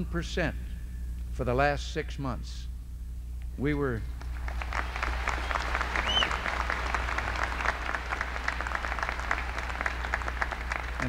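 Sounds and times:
audience applauding: 4.2s - 11.0s.

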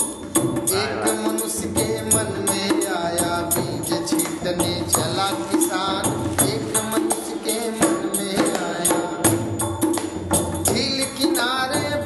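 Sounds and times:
percussion beat: 0.0s - 12.0s
man singing: 0.6s - 9.8s, 10.6s - 12.0s.

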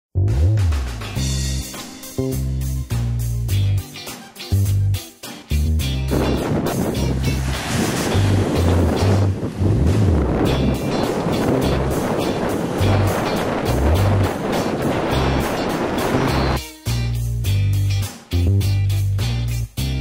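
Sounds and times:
soundtrack music: 0.2s - 17.2s
plucked bass line: 0.2s - 20.0s
strong wind roaring: 6.1s - 16.6s
surf breaking: 6.1s - 16.6s.

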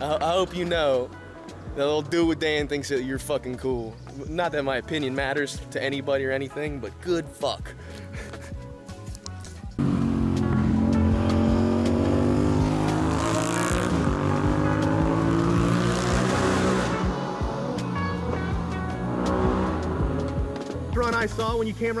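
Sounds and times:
vehicle engine revving through gears: 9.8s - 20.8s.

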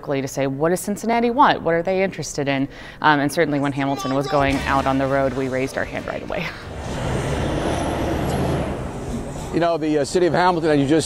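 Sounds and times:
large vehicle engine running: 4.6s - 9.6s.

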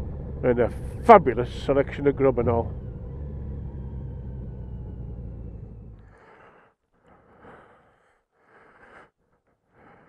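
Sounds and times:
motorcycle engine idling: 0.0s - 6.4s.

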